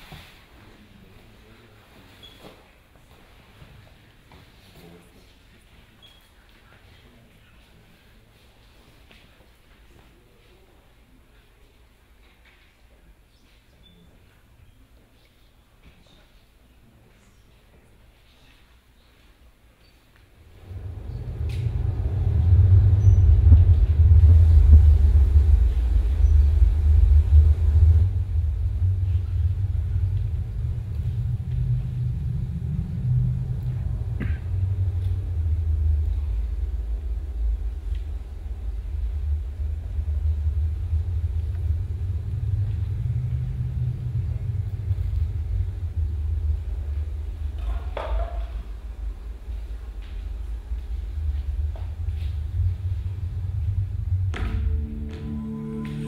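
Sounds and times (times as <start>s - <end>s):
deep low rumble over loudspeakers: 20.4s - 56.0s.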